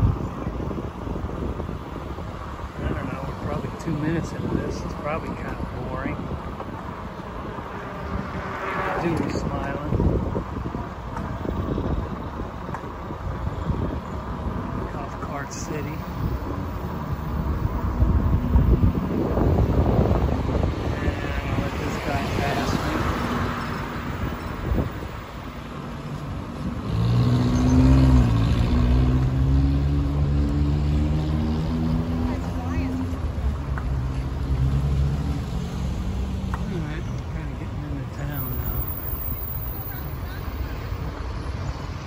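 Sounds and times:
wind rumbling on microphone: 0.0 - 42.0.

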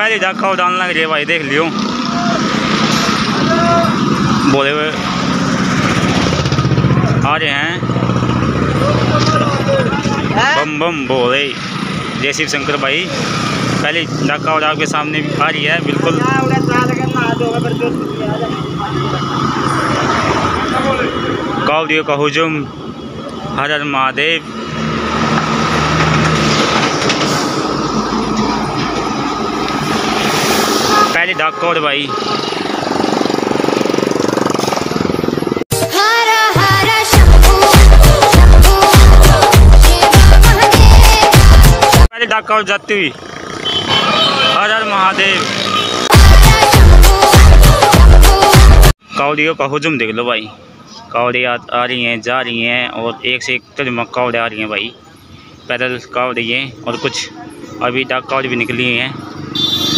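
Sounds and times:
engine rumbling: 0.0 - 35.6
road traffic noise: 0.0 - 59.9
person shouting: 3.4 - 4.0.

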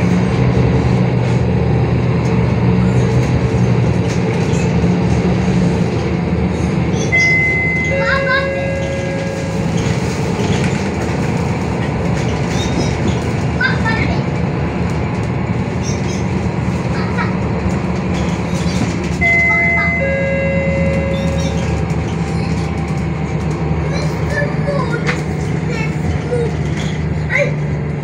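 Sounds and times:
bus engine droning: 0.0 - 28.0
road noise: 0.0 - 28.0.

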